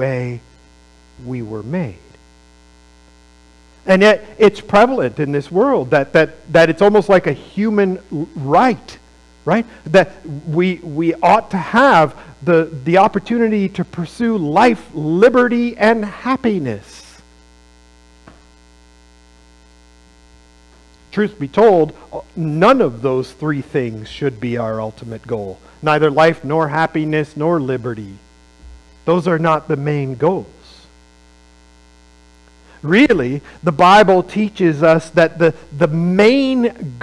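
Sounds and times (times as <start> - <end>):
man speaking: 0.0 - 0.4, 1.2 - 2.1, 3.9 - 17.2, 21.1 - 28.2, 29.1 - 30.9, 32.8 - 37.0
electrical mains hum: 0.0 - 37.0.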